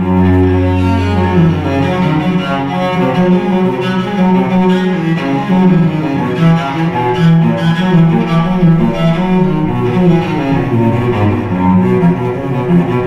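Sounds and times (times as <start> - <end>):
solo cello playing quick notes: 0.0 - 13.0.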